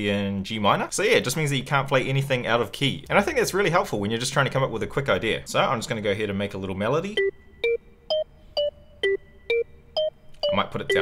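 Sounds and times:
synth percussion melody: 0:07.1 - 0:11.0.

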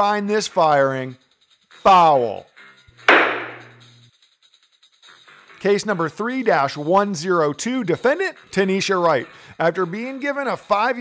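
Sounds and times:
gavel bang: 0:03.1 - 0:03.8.

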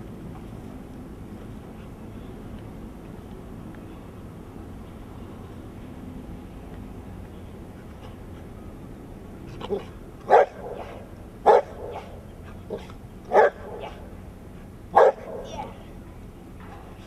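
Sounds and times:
large dog barking: 0:09.7 - 0:14.1, 0:14.9 - 0:15.6.

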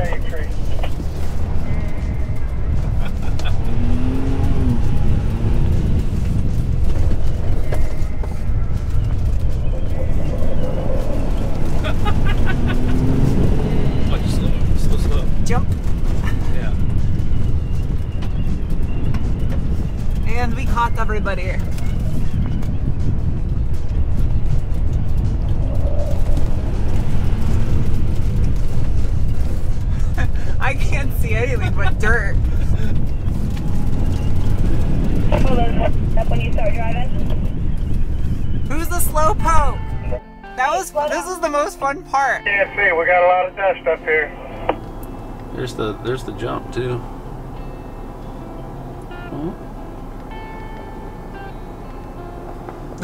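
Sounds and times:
vehicle rumble from inside cabin: 0:00.0 - 0:40.2
voices: 0:30.2 - 0:32.4, 0:35.2 - 0:37.3, 0:38.7 - 0:47.2.

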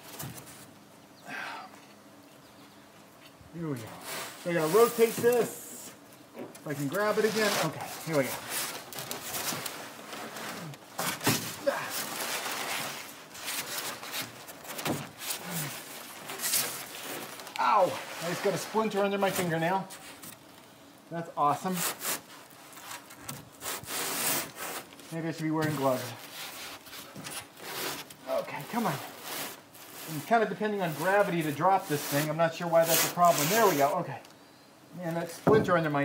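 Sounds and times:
board scraping against wood: 0:06.7 - 0:20.1, 0:21.6 - 0:34.0.

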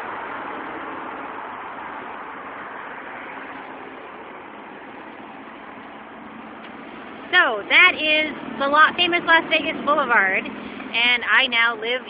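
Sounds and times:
passing vehicles rushing: 0:00.0 - 0:12.0.

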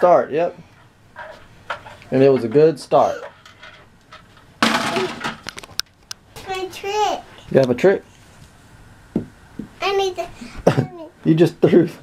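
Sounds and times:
toys clattering into cabinet: 0:02.4 - 0:05.8.

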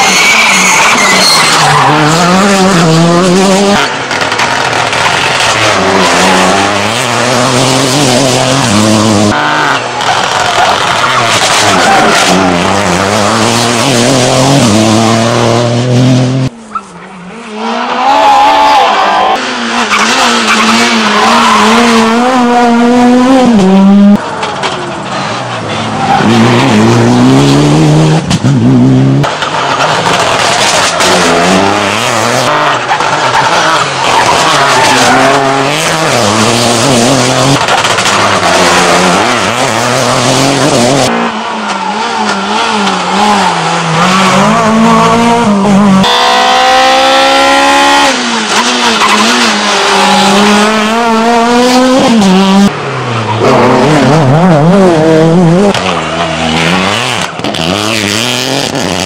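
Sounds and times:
rally car engines revving high: 0:00.0 - 0:59.0.

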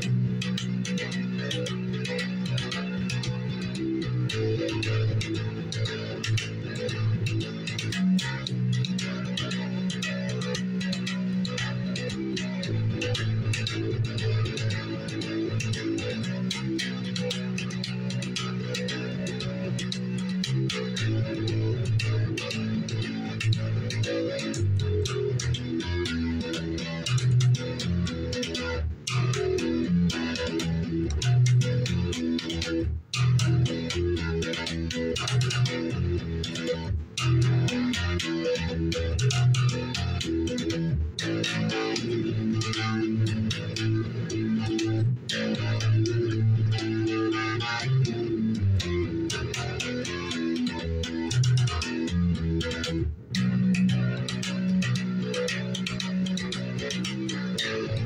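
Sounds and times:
electric guitar fingerstyle: 0:00.0 - 0:58.0.

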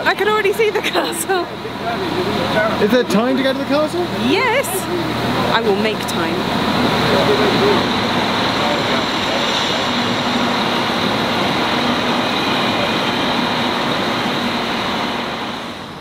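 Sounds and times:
diesel train engine idling: 0:00.0 - 0:16.0.

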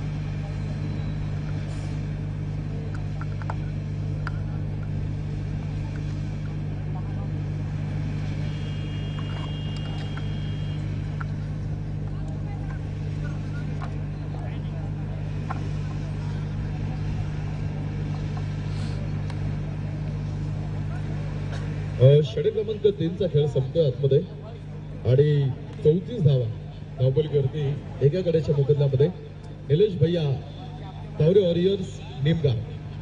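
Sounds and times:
steady low hum: 0:00.0 - 0:33.0
high steady tone: 0:08.2 - 0:11.5.

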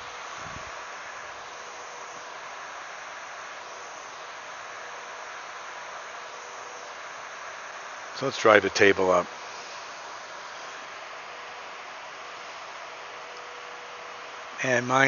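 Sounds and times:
faint steady tone: 0:00.0 - 0:15.0
steady hiss: 0:00.0 - 0:15.0.

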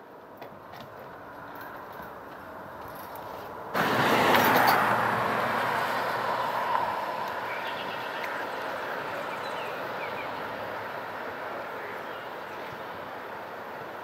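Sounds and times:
vehicle passing by: 0:03.7 - 0:12.1.

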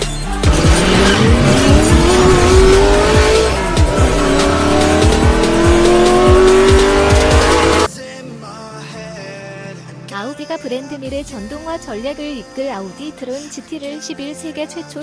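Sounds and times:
music with steady beat: 0:00.0 - 0:07.9
racing car engine accelerating: 0:00.0 - 0:07.9.

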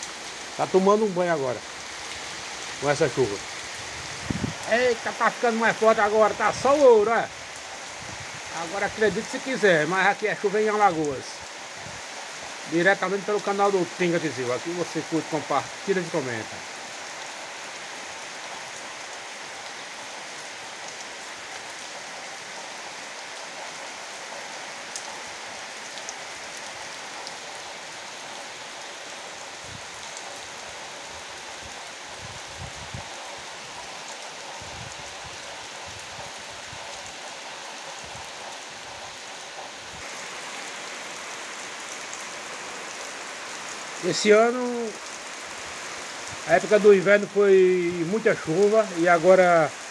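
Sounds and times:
heavy rain on trees and ground: 0:00.0 - 0:49.9.

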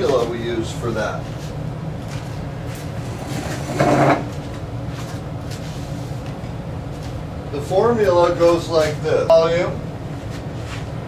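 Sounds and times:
low room hum: 0:00.0 - 0:11.0
furniture scraping: 0:03.0 - 0:05.9.

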